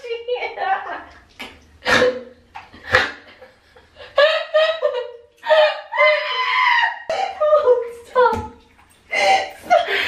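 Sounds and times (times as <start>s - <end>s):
woman shrieking: 5.5s - 7.5s.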